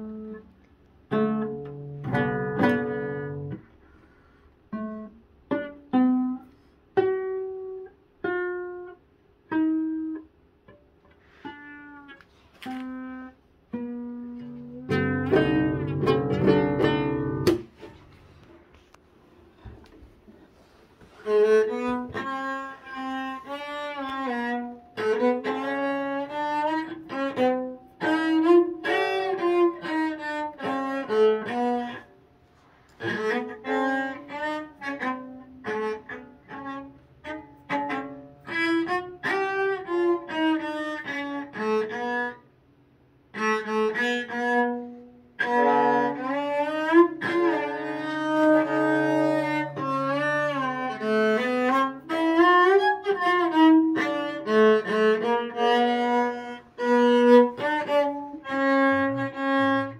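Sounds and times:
cello bowed melody: 0.0s - 18.9s, 19.5s - 59.9s.

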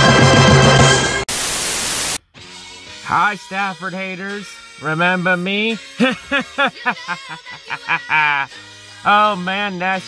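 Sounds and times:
theme music: 0.0s - 1.2s
static hiss: 1.3s - 2.2s
faint background music: 2.4s - 10.0s.

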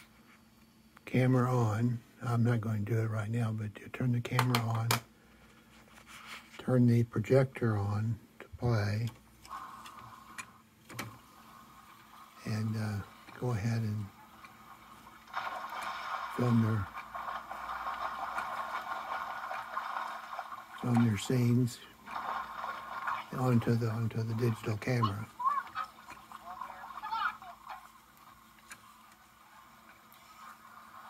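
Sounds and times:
film player whirring hiss: 0.0s - 31.0s.

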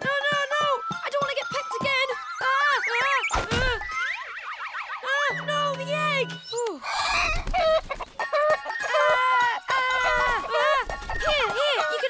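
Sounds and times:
music: 0.0s - 3.3s, 8.2s - 12.0s
cartoon thud: 3.3s - 3.9s.

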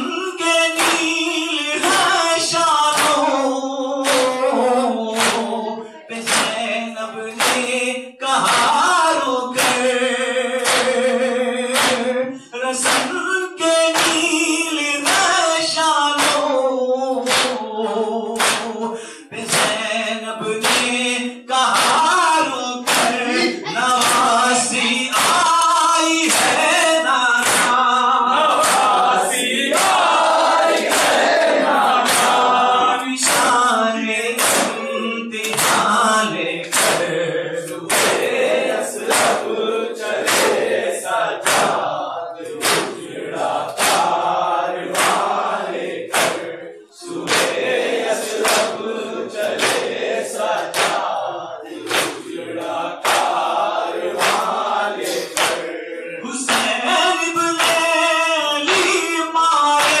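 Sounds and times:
men chanting in chorus: 0.0s - 60.0s.

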